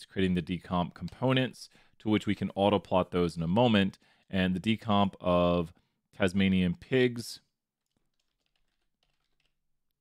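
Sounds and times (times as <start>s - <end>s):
faint keyboard typing: 1.0s - 1.4s, 7.8s - 10.0s.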